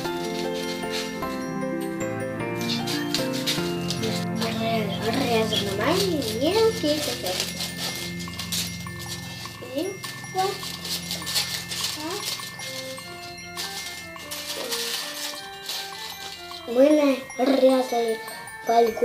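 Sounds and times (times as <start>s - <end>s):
scissors cutting foil: 0.0s - 1.6s, 2.4s - 16.8s
background music with held notes: 0.0s - 19.0s.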